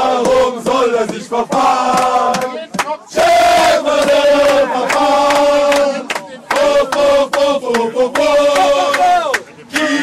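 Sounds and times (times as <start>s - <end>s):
men chanting: 0.0s - 10.0s.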